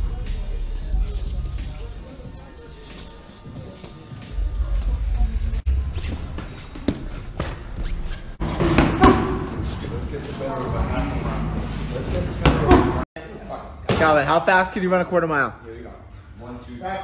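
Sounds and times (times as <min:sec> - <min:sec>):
low voices: 0:09.4 - 0:13.0.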